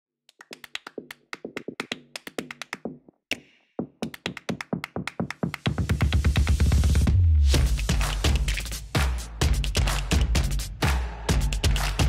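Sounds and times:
rapid sharp percussive clicks: 0:00.3 - 0:06.9, 0:07.6 - 0:12.0.

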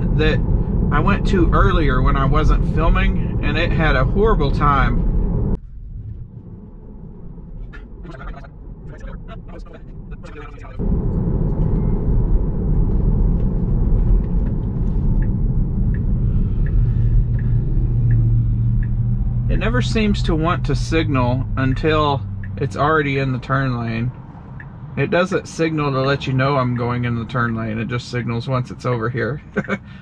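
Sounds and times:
low hum: 0:00.0 - 0:25.0
road and tyre rumble in car: 0:00.0 - 0:30.0.

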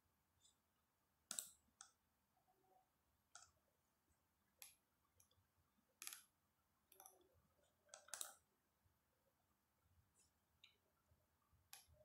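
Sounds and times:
computer mouse clicks: 0:01.3 - 0:02.0, 0:06.0 - 0:06.3, 0:07.9 - 0:08.4.

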